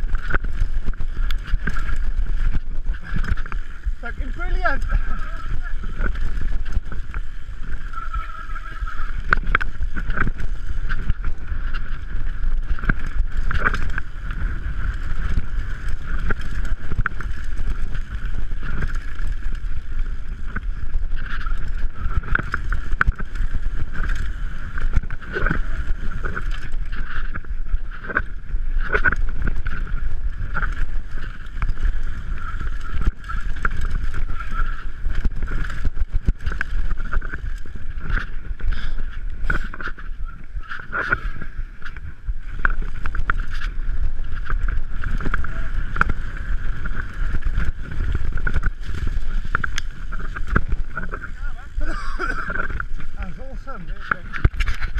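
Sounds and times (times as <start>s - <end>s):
mountain bike rattling: 0.0s - 54.9s
wheels knocking on stones: 0.0s - 54.9s
wind buffeting microphone: 0.0s - 54.9s.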